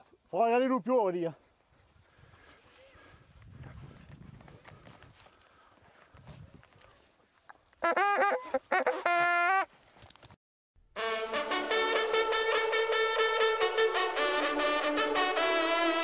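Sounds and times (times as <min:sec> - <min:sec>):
hunting horn notes: 0:11.0 - 0:16.0.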